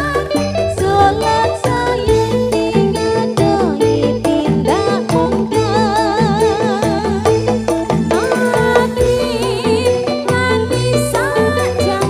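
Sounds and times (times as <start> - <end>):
bass and drums beat: 0.0 - 12.0
woman singing with vibrato: 0.0 - 12.0.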